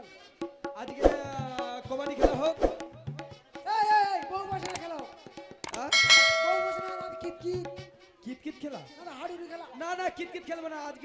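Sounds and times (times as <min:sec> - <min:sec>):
bell-like metallic strike ringing: 0:05.9 - 0:07.6.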